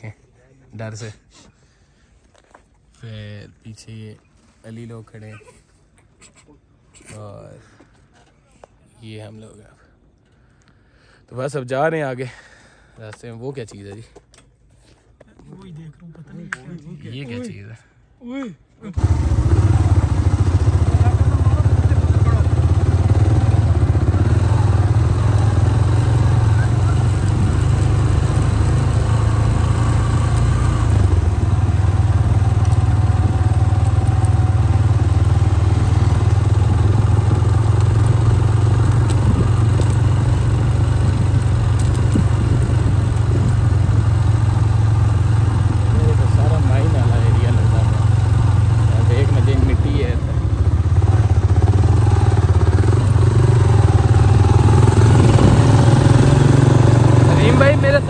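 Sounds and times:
motorcycle engines running: 0:19.0 - 0:58.0.

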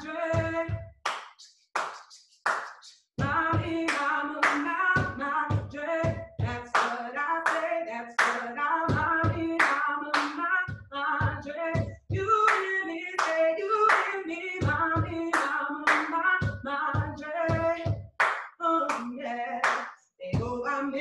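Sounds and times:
woman singing a cappella: 0:00.0 - 0:00.8, 0:03.2 - 0:18.0, 0:18.6 - 0:21.0.

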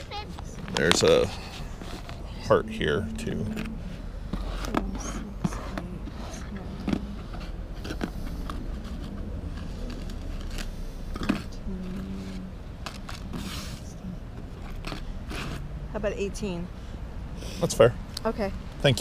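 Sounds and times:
faint voice: 0:02.3 - 0:04.0.

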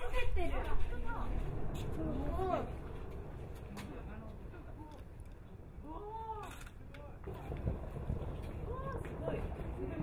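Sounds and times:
steady low rumble: 0:00.0 - 0:06.0, 0:07.2 - 0:10.0.

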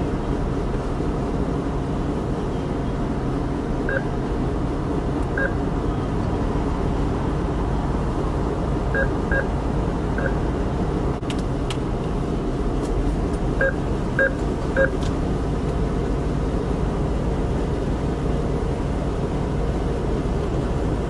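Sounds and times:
car engine idling hum: 0:00.0 - 0:21.0
keypad beeps: 0:03.9 - 0:04.1, 0:05.4 - 0:05.6, 0:09.0 - 0:09.5, 0:13.6 - 0:15.0.

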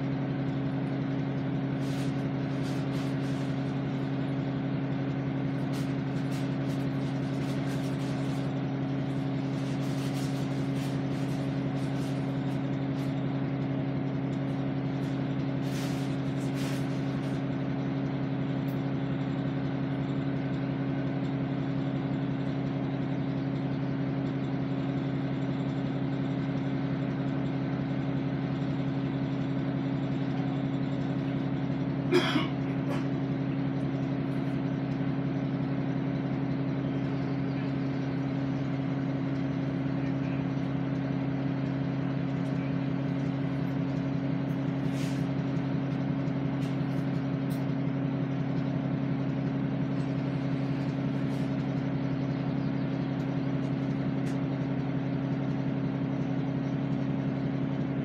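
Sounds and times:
vehicle engine idling: 0:00.0 - 0:58.0.

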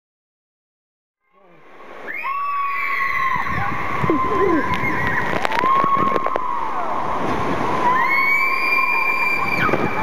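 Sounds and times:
children screaming: 0:02.0 - 0:10.0
crowd noise: 0:03.3 - 0:10.0.

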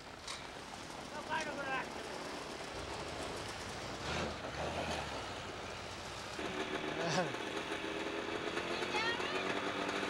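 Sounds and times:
snowmobile engine running: 0:06.3 - 0:10.0.

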